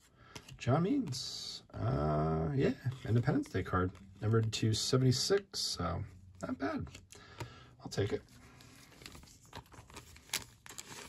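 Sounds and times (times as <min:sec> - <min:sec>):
soft plastic rustling: 0:07.9 - 0:11.0
sharp plastic crinkles: 0:09.0 - 0:11.0.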